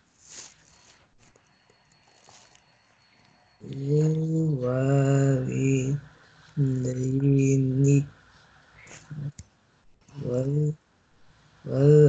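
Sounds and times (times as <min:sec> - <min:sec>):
person chanting recitation: 0:03.6 - 0:08.2, 0:08.8 - 0:09.3, 0:10.1 - 0:10.8, 0:11.7 - 0:12.0.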